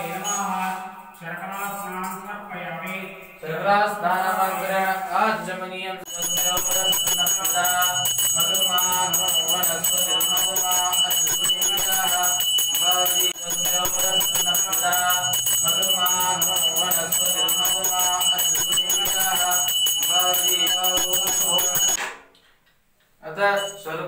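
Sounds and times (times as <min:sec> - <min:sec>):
person chanting: 0:00.0 - 0:22.0
hand bell ringing rapidly: 0:06.1 - 0:22.0.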